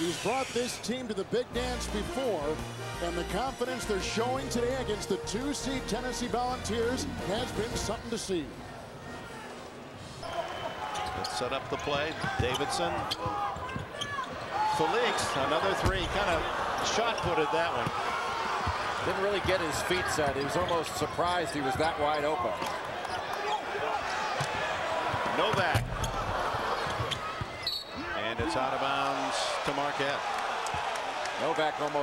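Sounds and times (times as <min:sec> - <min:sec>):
arena crowd noise: 0:00.0 - 0:32.0.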